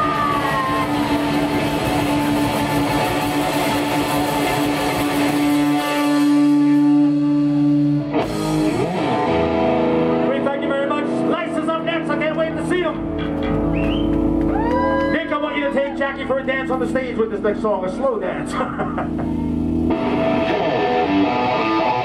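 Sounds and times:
guitar note sliding down: 0.0s - 10.3s, 19.0s - 22.0s
punk rock band playing: 0.0s - 22.0s.

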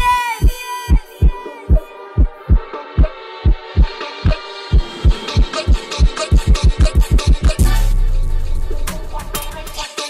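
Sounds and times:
deep kick drum beating: 0.0s - 7.7s
electronic dance music: 0.0s - 8.0s.

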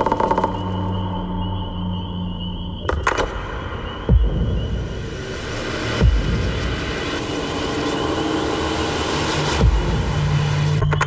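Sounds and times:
low sustained drone: 0.6s - 11.0s.

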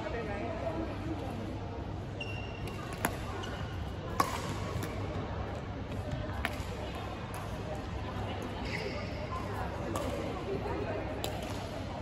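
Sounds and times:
racket striking shuttlecock: 4.1s - 5.0s.

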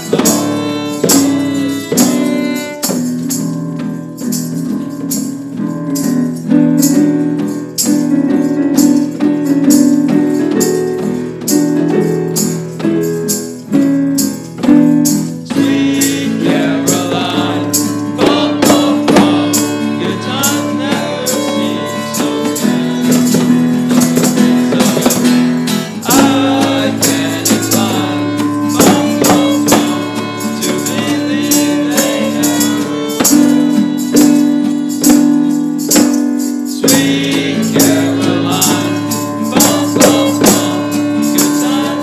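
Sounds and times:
boys singing: 0.0s - 3.1s, 15.4s - 35.6s, 36.7s - 42.0s
violin: 0.0s - 5.7s, 15.3s - 42.0s
acoustic guitar: 0.0s - 42.0s
tambourine jingling: 0.0s - 42.0s.

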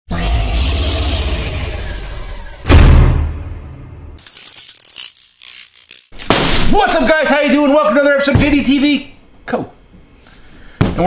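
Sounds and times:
ratchet clicking: 4.2s - 6.2s.

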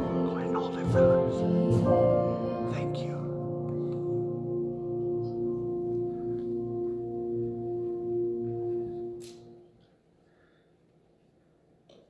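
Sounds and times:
keyboard chord held: 0.0s - 9.7s.

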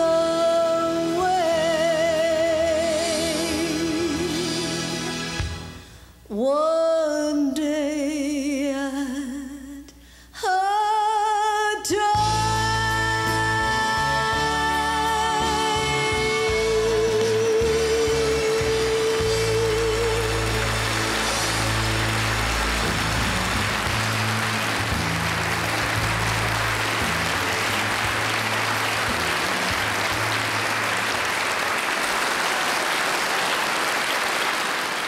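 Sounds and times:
audience applause: 18.0s - 35.0s.

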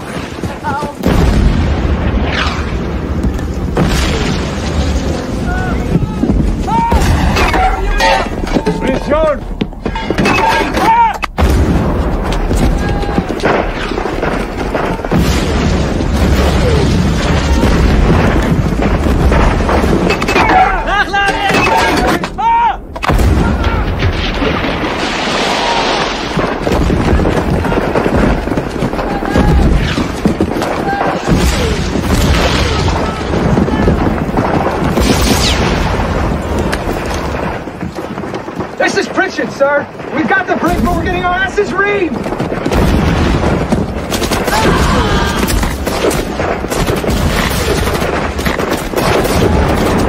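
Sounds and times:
explosions: 0.0s - 22.1s, 22.8s - 50.0s
gunfire: 23.0s - 39.4s, 40.0s - 50.0s.

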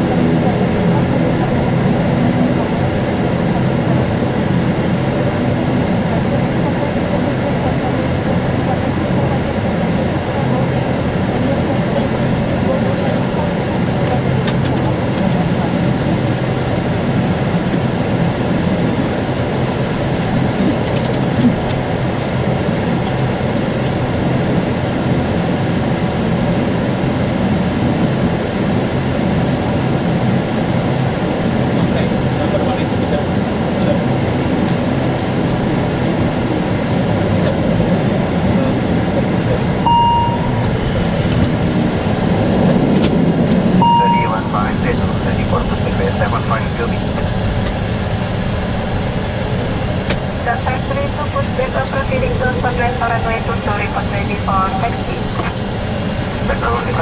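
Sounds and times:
turboprop engine idling: 0.0s - 57.0s
short beeps: 39.8s - 40.7s, 43.8s - 44.6s.

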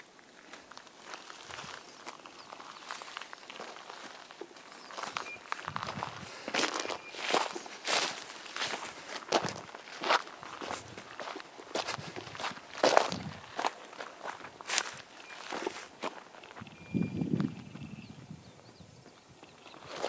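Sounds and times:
footsteps on cinder and grass: 0.1s - 17.9s.

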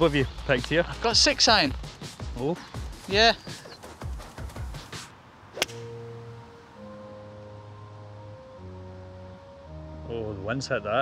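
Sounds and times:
golf club striking ball: 5.5s - 6.8s
music of slow held chords: 5.7s - 11.0s.

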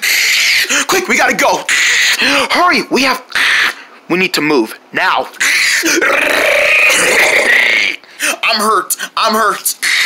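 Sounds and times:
person's raspy screeching growl: 0.0s - 2.6s, 3.3s - 3.8s, 5.4s - 8.0s, 9.7s - 10.0s.

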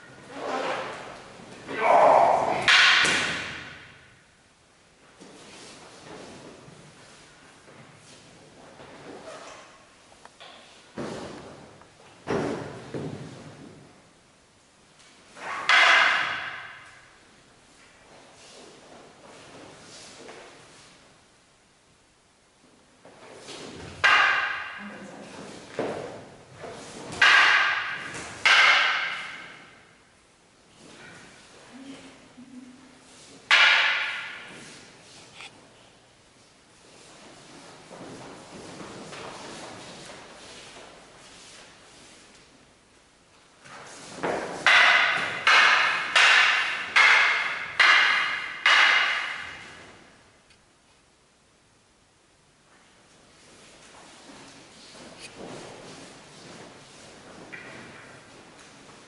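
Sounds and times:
wooden swords clacking: 0.3s - 4.1s, 15.0s - 17.2s, 23.0s - 30.0s, 33.2s - 35.6s, 43.6s - 50.1s, 53.8s - 59.0s.

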